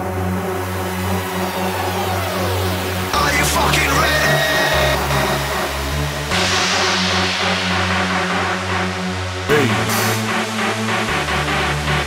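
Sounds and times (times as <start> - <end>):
high rushing noise sweep: 6.4 - 10.3.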